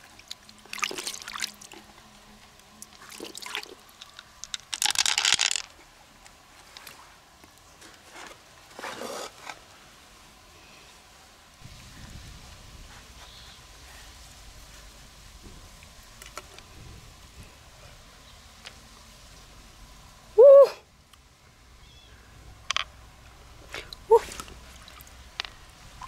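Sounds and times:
woman hooting ooh: 20.4 - 20.8.

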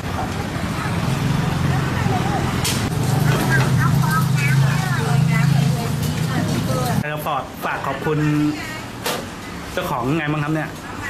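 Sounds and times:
engine humming: 0.0 - 7.0
voices talking: 0.0 - 11.0.

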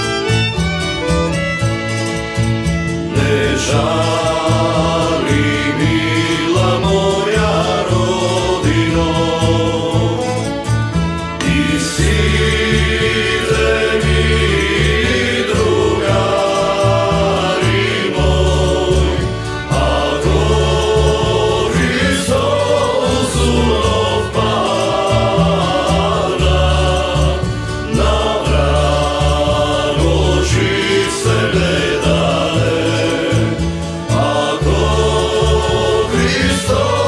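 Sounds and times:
accordion: 0.0 - 37.0
double bass: 0.0 - 37.0
guitars: 0.0 - 37.0
violin: 0.0 - 37.0
voices singing together: 2.0 - 37.0.

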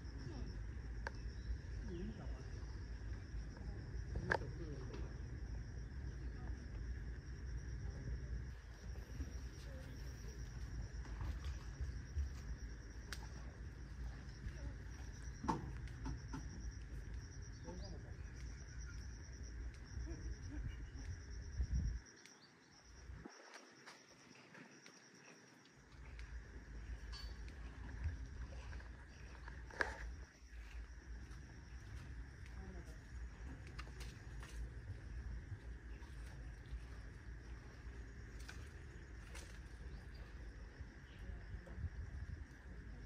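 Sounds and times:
insects droning: 0.0 - 43.0.

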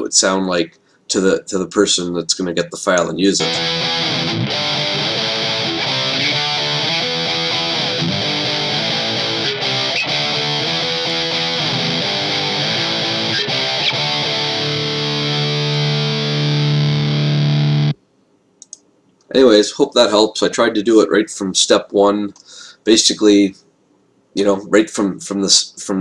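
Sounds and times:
distorted electric guitar: 3.4 - 18.0.

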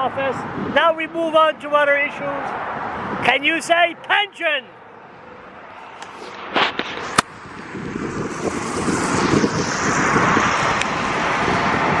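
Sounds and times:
wind buffeting microphone: 0.0 - 1.4, 2.0 - 3.4, 6.4 - 12.0.

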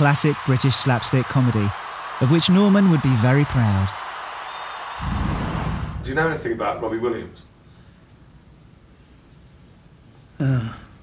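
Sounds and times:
stadium crowd cheering: 0.0 - 7.4
deep rumble: 5.0 - 6.7.

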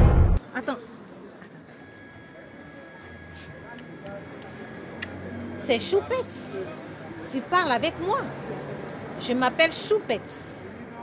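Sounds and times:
faint indistinct voices: 0.4 - 11.0.

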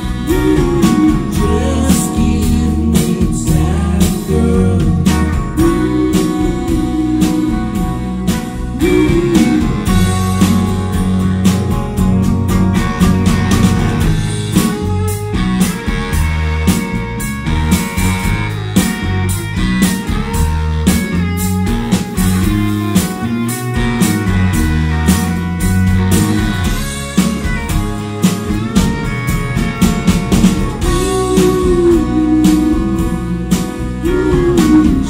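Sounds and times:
live rock band playing: 0.0 - 35.0.

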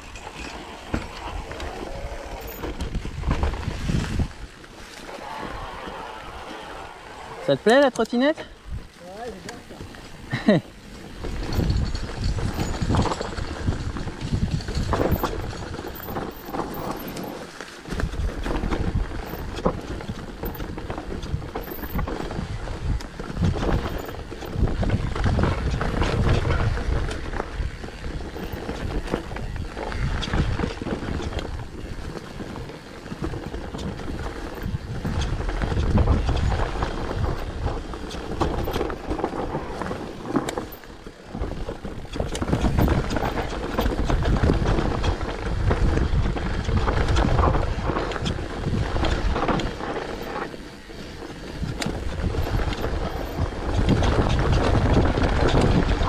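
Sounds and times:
bike clicks and knocks: 0.0 - 6.2, 7.6 - 56.0
bike tyres rolling over dirt: 0.0 - 56.0
wind rumbling on microphone: 0.0 - 56.0.

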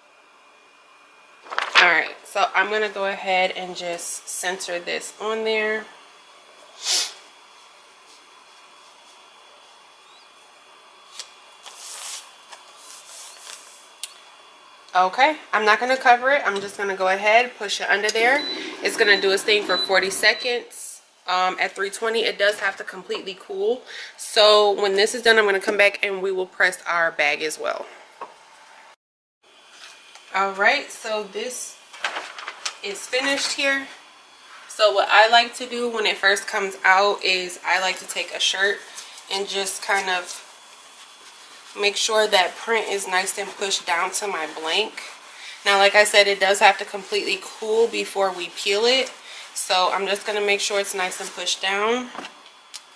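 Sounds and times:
plastic film swishing: 1.4 - 1.8, 11.1 - 13.9
soft rustling of plastic film: 1.4 - 1.8, 10.4 - 14.0, 38.1 - 51.7.

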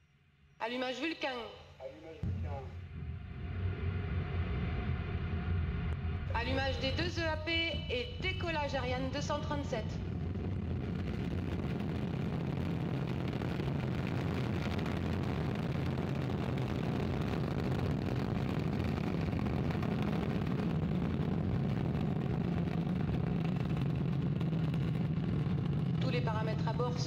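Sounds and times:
rocket engine deep rumble: 2.1 - 27.0.

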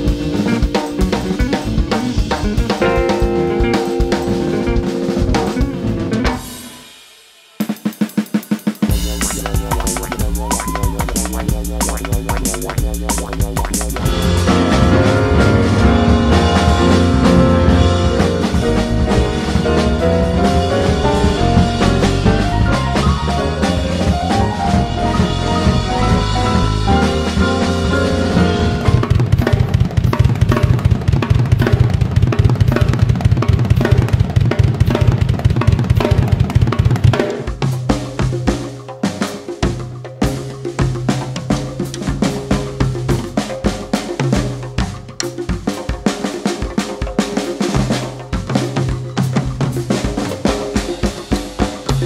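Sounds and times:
drum kit playing: 0.0 - 52.0.

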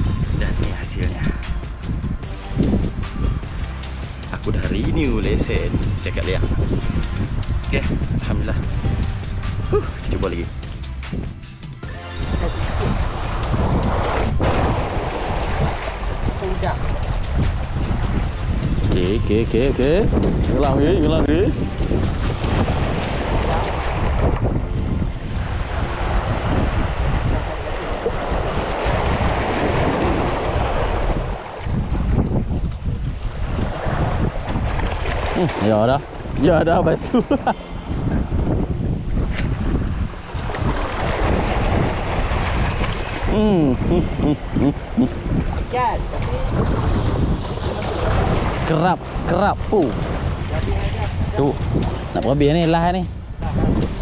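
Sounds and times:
wind buffeting microphone: 0.0 - 54.0
waves splashing on rocks: 12.4 - 24.5, 25.3 - 32.2, 33.2 - 37.5, 39.2 - 53.0.

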